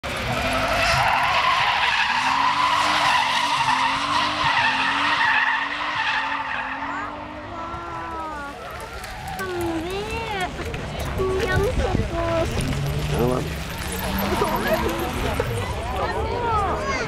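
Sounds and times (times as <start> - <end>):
car engine revving hard: 0.0 - 8.4, 12.6 - 15.7.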